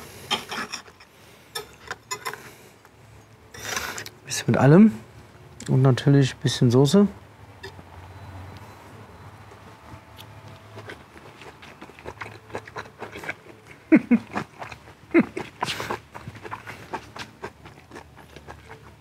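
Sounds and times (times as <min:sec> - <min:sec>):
man chewing: 0:09.5 - 0:19.0.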